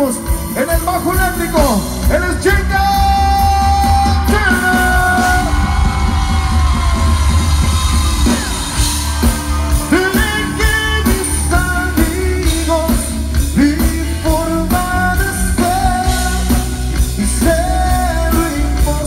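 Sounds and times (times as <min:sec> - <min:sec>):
band playing through loudspeakers: 0:00.0 - 0:19.0
lead vocal singing: 0:08.0 - 0:19.0.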